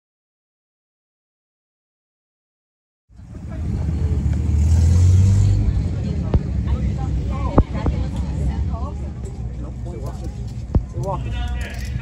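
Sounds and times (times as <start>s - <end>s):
loud low engine rumble: 3.1s - 11.2s
faint voices: 3.1s - 12.0s.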